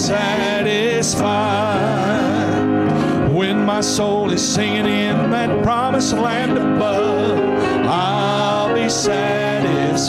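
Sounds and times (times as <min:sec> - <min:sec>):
instrumental backing: 0:00.0 - 0:10.0
mixed group singing gospel: 0:00.0 - 0:10.0.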